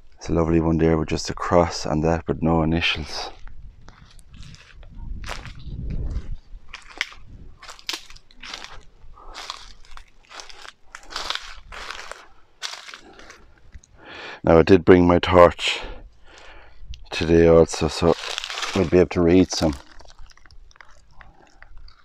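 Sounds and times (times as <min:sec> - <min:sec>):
footsteps crunching on dry leaves: 0:03.3 - 0:13.6, 0:17.7 - 0:21.2
low rumble: 0:03.4 - 0:12.3.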